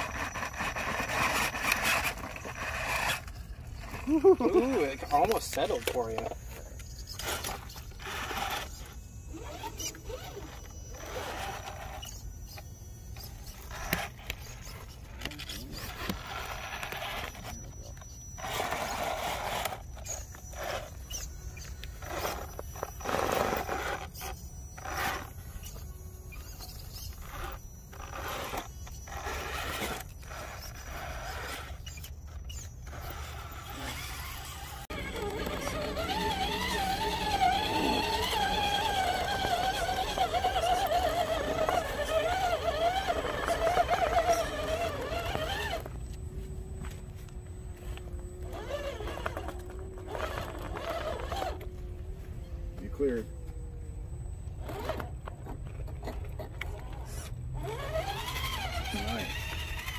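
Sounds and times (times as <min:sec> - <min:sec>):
electric motors whining: 0:00.0 - 0:59.9.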